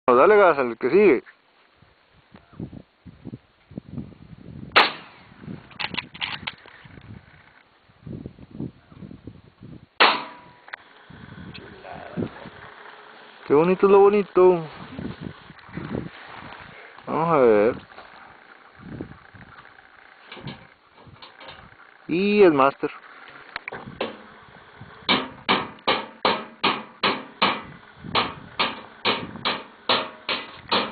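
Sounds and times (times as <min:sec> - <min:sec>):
rifle shot: 0:04.8 - 0:05.2, 0:10.0 - 0:10.5
evenly spaced knocks: 0:25.1 - 0:30.9
sharp metallic clacks: 0:25.1 - 0:30.9.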